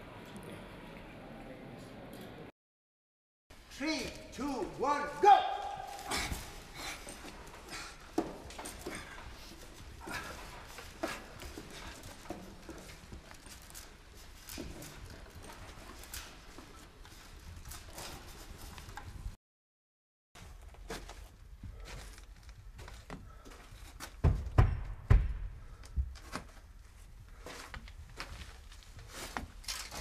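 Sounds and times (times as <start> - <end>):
person shouting: 4.8 - 6.4
knocks and clatter: 24.1 - 26.2.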